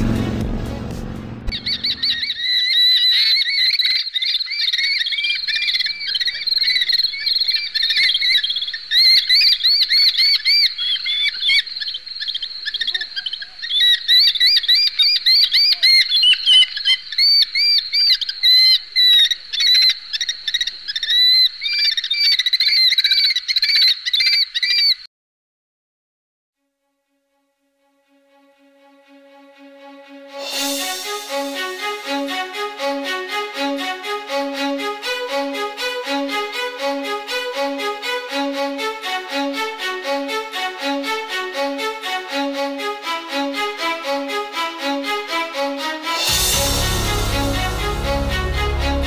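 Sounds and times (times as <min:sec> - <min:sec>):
music: 0:00.0 - 0:02.2, 0:26.6 - 0:49.0
small birds calling: 0:01.5 - 0:25.1.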